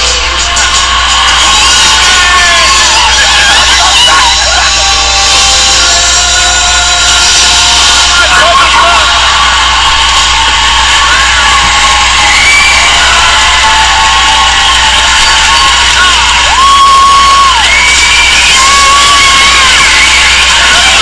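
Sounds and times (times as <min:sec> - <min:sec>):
audience cheering and whooping: 0:00.0 - 0:21.0
high shrieks: 0:00.4 - 0:21.0.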